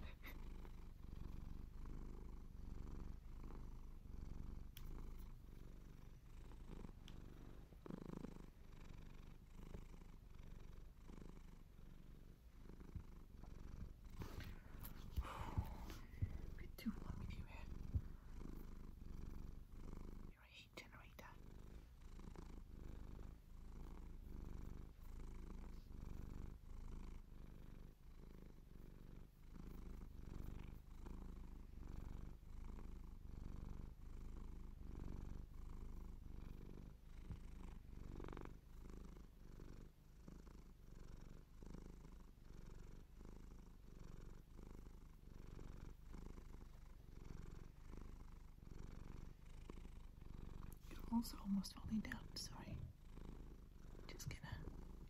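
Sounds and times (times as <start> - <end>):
cat purring: 0.0 - 55.0.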